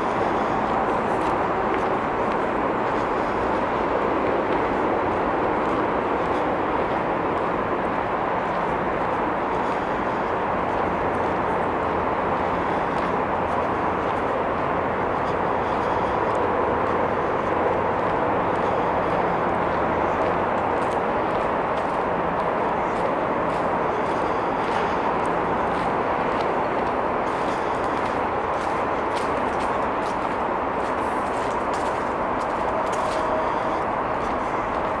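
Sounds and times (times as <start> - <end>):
distant traffic rushing: 0.0 - 35.0
faint footsteps on trail: 0.0 - 35.0.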